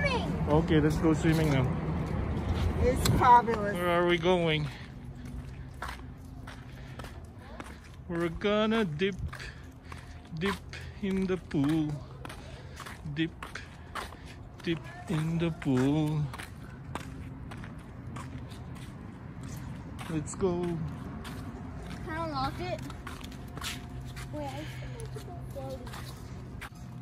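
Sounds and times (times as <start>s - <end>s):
footsteps on asphalt: 0.0s - 27.0s.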